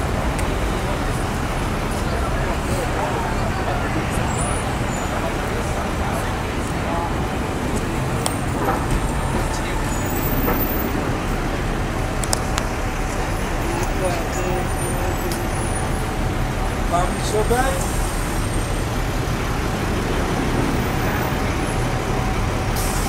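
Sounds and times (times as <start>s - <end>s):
pedestrians talking: 0.0s - 23.0s
traffic rumble: 0.0s - 23.0s.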